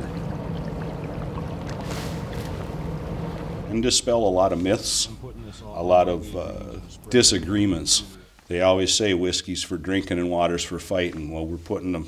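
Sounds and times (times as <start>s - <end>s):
floodwater flowing through culvert: 0.0s - 8.2s
low steady hum: 0.0s - 9.1s.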